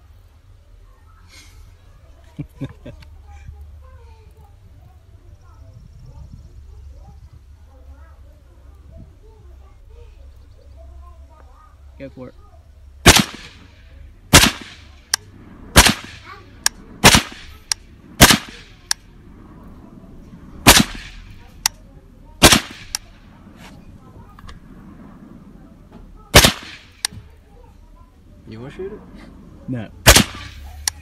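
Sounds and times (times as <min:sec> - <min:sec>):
rifle shots: 0:13.0 - 0:19.0, 0:20.6 - 0:21.6, 0:22.4 - 0:23.2, 0:26.3 - 0:27.1, 0:30.0 - 0:31.0
fainter sharp cracks: 0:13.0 - 0:27.4, 0:30.0 - 0:31.0.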